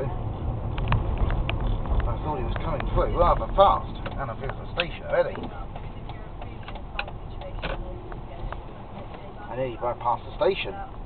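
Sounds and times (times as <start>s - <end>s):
road and engine rumble: 0.0s - 11.0s.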